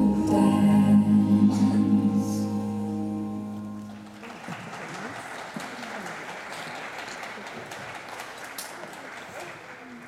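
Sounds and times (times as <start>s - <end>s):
audience applause: 3.9s - 10.0s.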